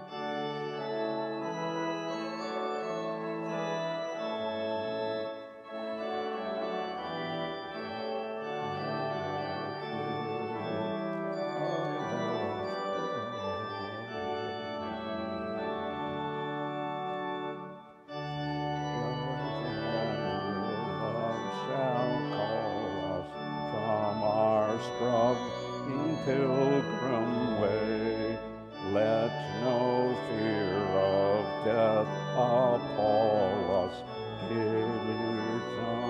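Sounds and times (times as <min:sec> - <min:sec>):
church organ playing a hymn: 0:00.0 - 0:36.0.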